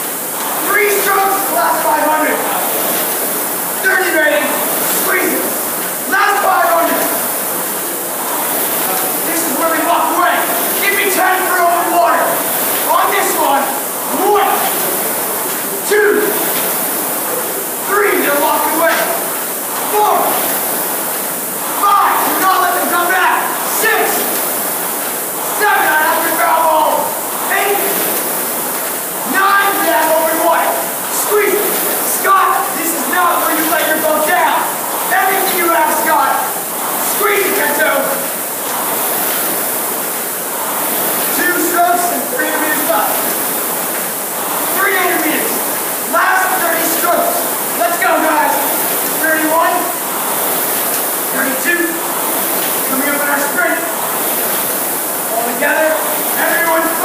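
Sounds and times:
rowing machine flywheel whoosh: 0.0s - 57.0s
indistinct voices: 21.6s - 24.4s.

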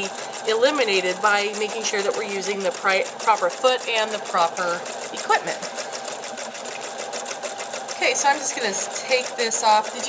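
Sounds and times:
sewing machine running: 0.0s - 10.0s.

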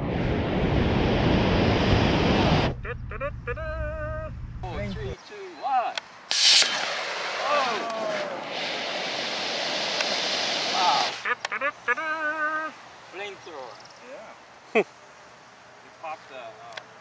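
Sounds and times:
person giving wavering call: 2.8s - 4.4s, 11.3s - 12.8s
rocket motor blast: 6.3s - 11.2s
loud rushing hiss: 6.3s - 11.3s
voices exclaiming: 7.3s - 8.7s, 10.7s - 14.9s.

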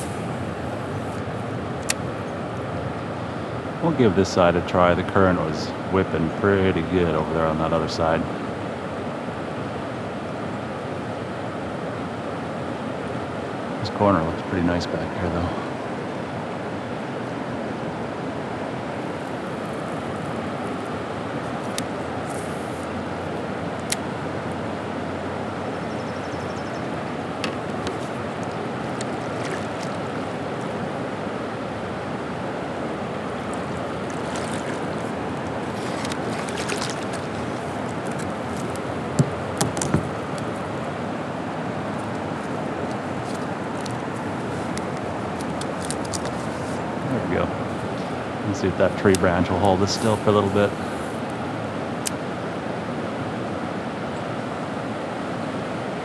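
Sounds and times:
river water rushing over a dam: 0.0s - 56.0s.

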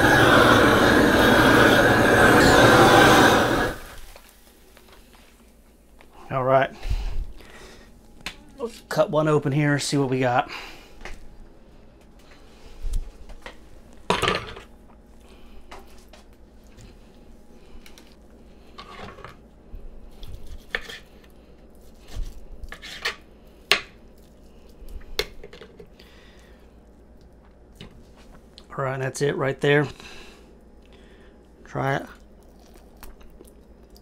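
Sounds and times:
knife and fork scraping cutting board: 20.5s - 21.1s, 22.0s - 23.2s.

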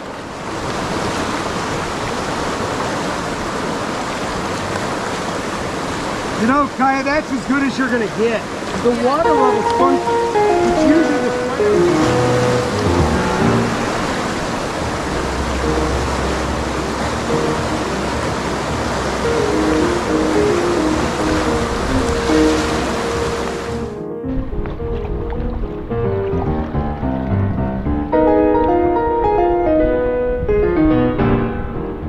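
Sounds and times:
whitewater rushing: 0.0s - 24.0s
background music: 8.9s - 32.0s.

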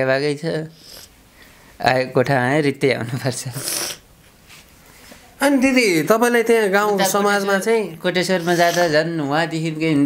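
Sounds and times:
man speaking: 5.4s - 10.0s.

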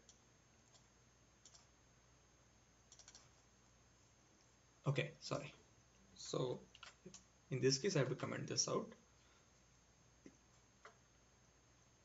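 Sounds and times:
faint computer clicks: 0.0s - 1.7s, 2.9s - 3.4s, 6.7s - 7.3s
low steady hum: 0.0s - 12.0s.

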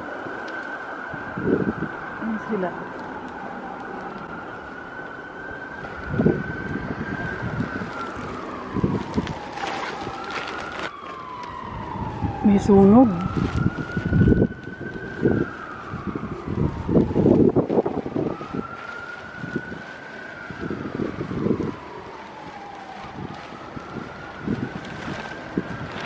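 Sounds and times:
emergency siren wailing: 0.0s - 26.0s
wind on microphone: 1.0s - 26.0s
footsteps on pavement: 5.8s - 12.3s.

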